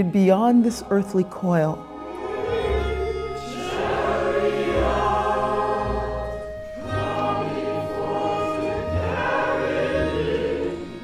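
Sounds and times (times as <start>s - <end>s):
small orchestra: 0.0s - 11.0s.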